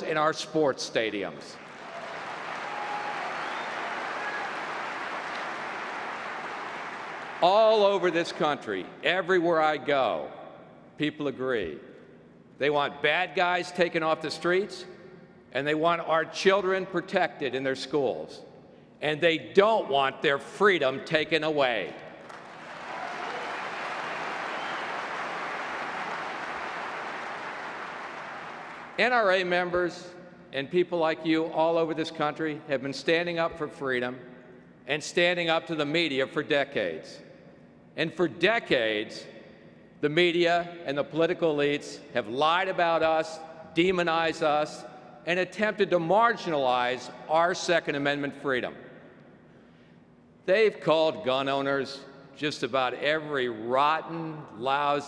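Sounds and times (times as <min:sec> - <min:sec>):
audience applauding: 0:01.6 - 0:07.4, 0:22.2 - 0:29.0.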